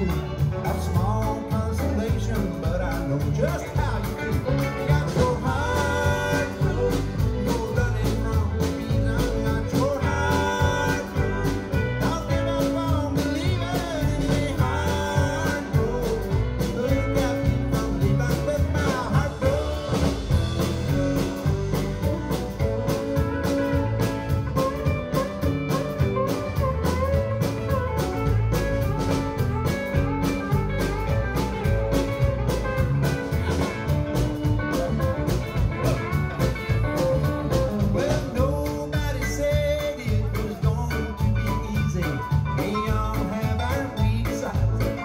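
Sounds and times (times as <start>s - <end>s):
country bluegrass band playing: 0.0s - 45.0s.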